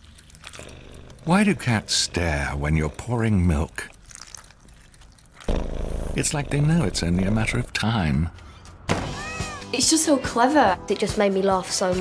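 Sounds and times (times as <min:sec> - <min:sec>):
milk pouring from plastic bottle: 0:02.9 - 0:05.8.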